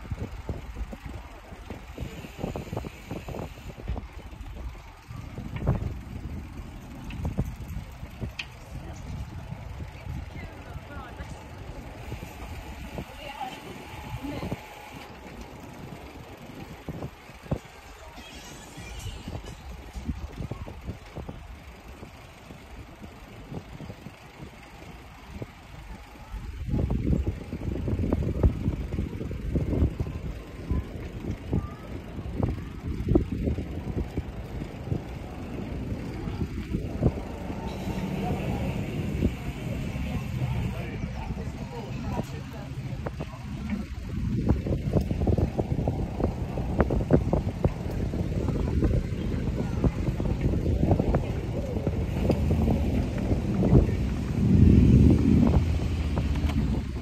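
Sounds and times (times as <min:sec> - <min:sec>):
road and tyre noise: 0:00.0 - 0:57.0
wind buffeting microphone: 0:00.0 - 0:57.0.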